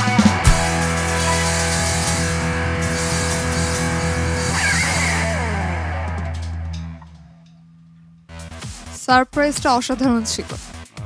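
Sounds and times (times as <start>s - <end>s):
rock band sustained chord: 0.0s - 7.5s
high wavering note: 0.5s - 7.9s.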